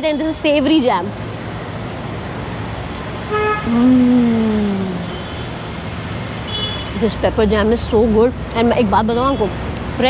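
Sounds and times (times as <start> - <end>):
street traffic hum and hiss: 0.0 - 10.0.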